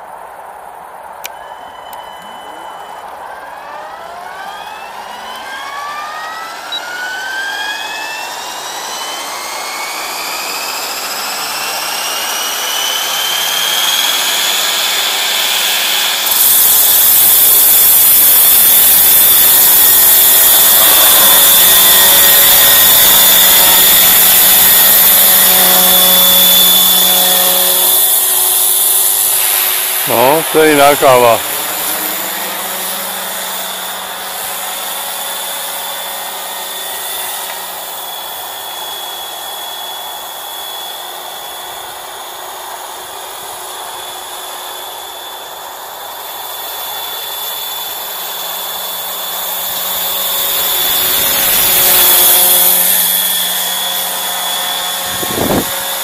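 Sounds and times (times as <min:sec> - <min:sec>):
model helicopter whine: 0:00.0 - 0:56.0.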